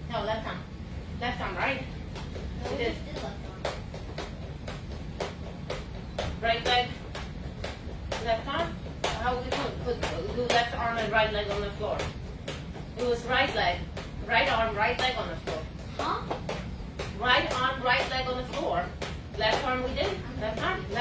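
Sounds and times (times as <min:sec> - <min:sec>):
sharp steady taps: 0:01.8 - 0:21.0.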